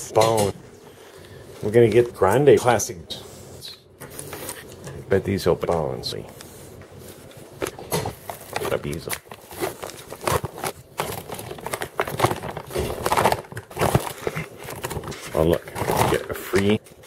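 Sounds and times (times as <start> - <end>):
plastic bag crinkling: 7.5 - 17.0.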